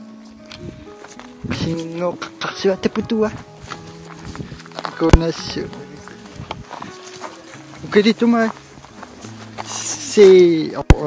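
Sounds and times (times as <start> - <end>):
faint background music: 0.0 - 11.0
footsteps on rocky snowy ground: 0.4 - 11.0
person speaking: 1.5 - 8.7, 9.4 - 11.0.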